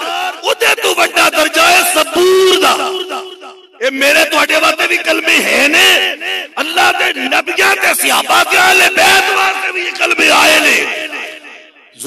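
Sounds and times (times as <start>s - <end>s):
man calling through loudspeaker: 0.0s - 12.0s
man speaking: 0.0s - 12.0s.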